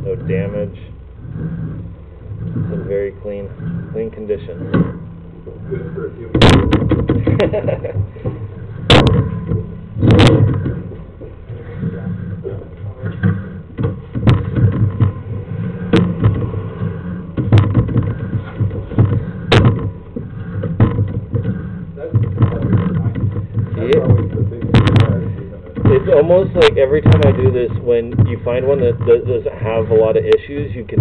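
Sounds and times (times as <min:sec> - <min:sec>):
cable rumbling in pipe: 0:00.0 - 0:31.0
camera head knocking: 0:04.6 - 0:12.4, 0:13.1 - 0:31.0.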